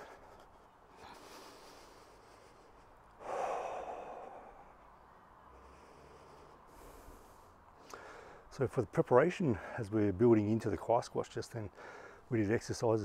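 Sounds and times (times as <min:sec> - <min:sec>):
faint background hiss: 0:00.0 - 0:13.0
man exhaling: 0:03.2 - 0:04.8.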